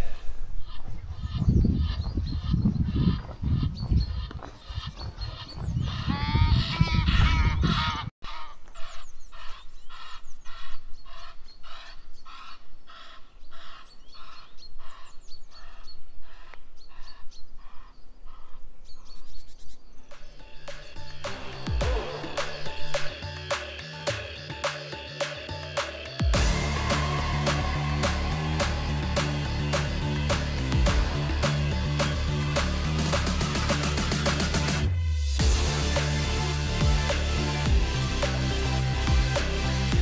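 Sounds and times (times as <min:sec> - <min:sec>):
wind buffeting microphone: 0:00.4 - 0:08.1
geese honking: 0:04.7 - 0:16.6, 0:26.3 - 0:34.7.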